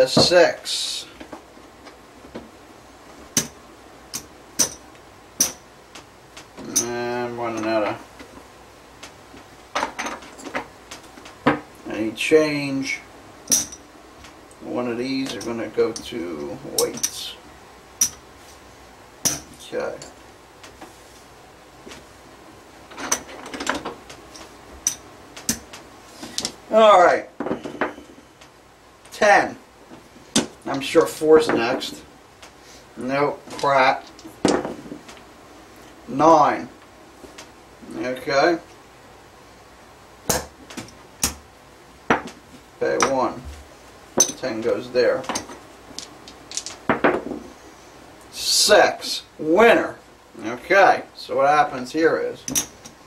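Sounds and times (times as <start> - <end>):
dice clacking and tumbling: 45.9 - 47.4.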